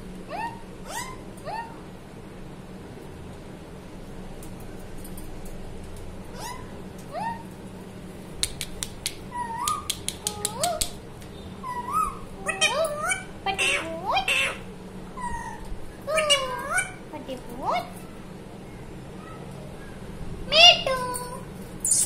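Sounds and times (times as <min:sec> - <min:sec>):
parakeet whistled calls and chirps: 0:00.3 - 0:01.8, 0:06.4 - 0:07.5, 0:09.3 - 0:10.0, 0:11.6 - 0:14.6
sharp clicks: 0:08.4 - 0:11.0.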